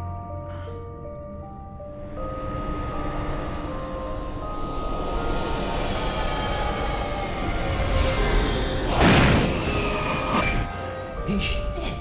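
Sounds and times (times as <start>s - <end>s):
dark horror score: 0.0s - 12.0s
low rumbling riser: 1.9s - 10.7s.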